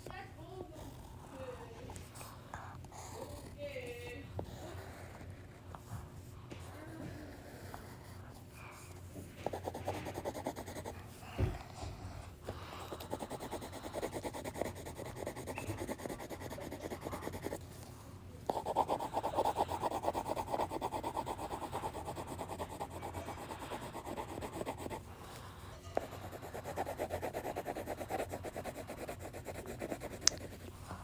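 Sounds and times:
crayon scribbling on paper: 3.0 - 5.6, 9.4 - 11.0, 12.9 - 17.7, 18.5 - 25.1, 26.0 - 30.6.

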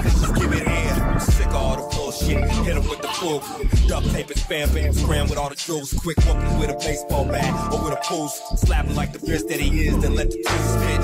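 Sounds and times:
rapping over a bass-heavy beat: 0.0 - 11.0.

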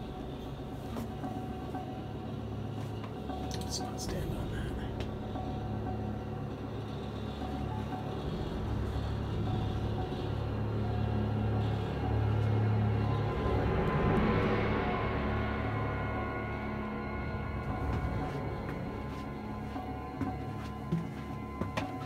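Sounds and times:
dark droning ambient music: 0.0 - 22.0.

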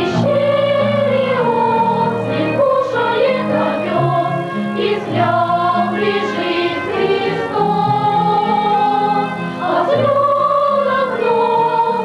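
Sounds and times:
children's choir singing: 0.0 - 12.0
violin playing: 0.0 - 12.0.

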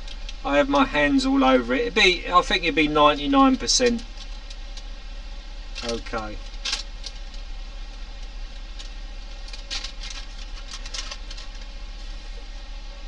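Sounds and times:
steady low hum: 0.0 - 13.0
paper rustling under fingers: 8.2 - 12.2.

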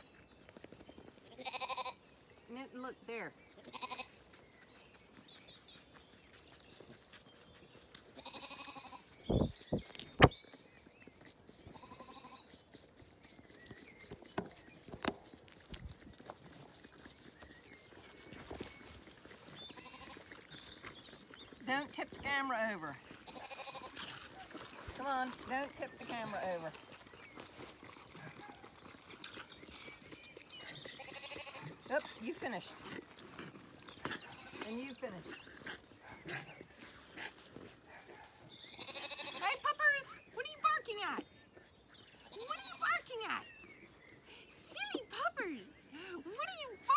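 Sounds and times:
faint ticks and rustles: 0.0 - 40.3
lambs suckling: 0.0 - 45.9
faint lamb bleat: 1.3 - 2.0, 3.6 - 4.2, 8.2 - 9.0, 11.7 - 12.5, 19.8 - 20.2, 23.3 - 24.0, 31.0 - 31.8, 38.7 - 39.5.

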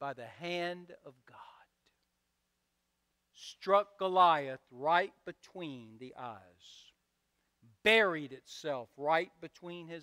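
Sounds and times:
man speaking softly: 0.0 - 2.0
faint steady hum: 0.0 - 10.0.

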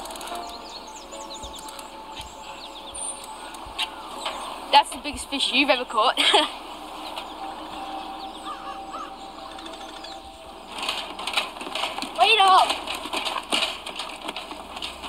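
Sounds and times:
lakeside ambience: 0.0 - 15.0
footsteps on wooden boards: 6.3 - 15.0.

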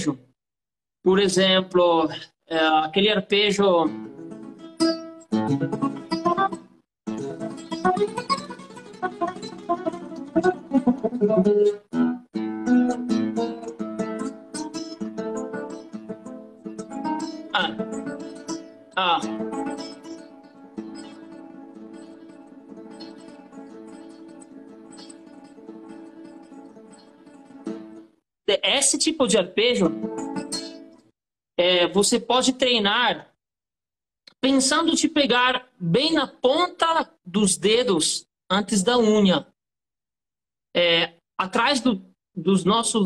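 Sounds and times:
classical guitar fingerstyle arpeggios: 3.9 - 28.1, 29.9 - 31.0.

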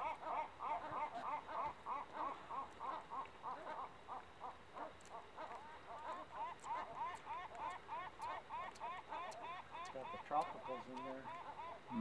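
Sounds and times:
bird calling: 0.0 - 12.0.

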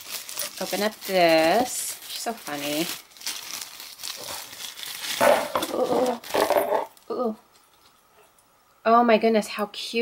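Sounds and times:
paper packaging rustling and crinkling: 0.0 - 7.0.

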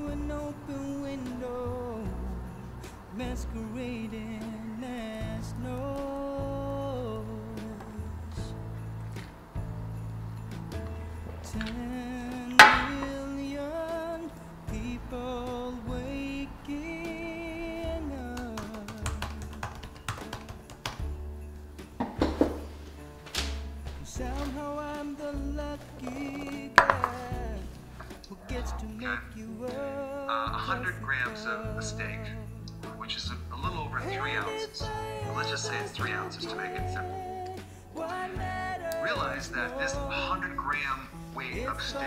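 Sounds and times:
steady bass: 0.0 - 20.0, 21.0 - 42.0.

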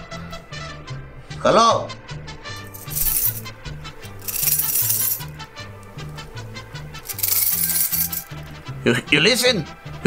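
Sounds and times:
keys jingling: 2.6 - 5.9, 7.0 - 8.4.

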